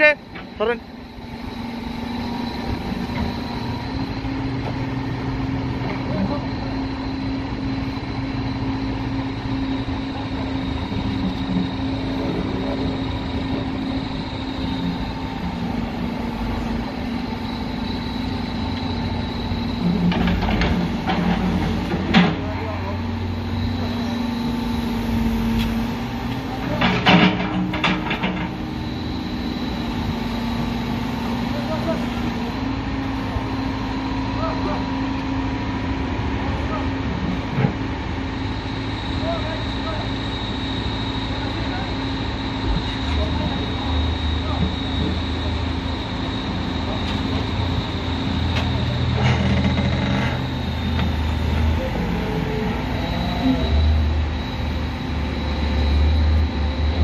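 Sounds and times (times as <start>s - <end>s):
diesel engine running: 0.0s - 57.0s.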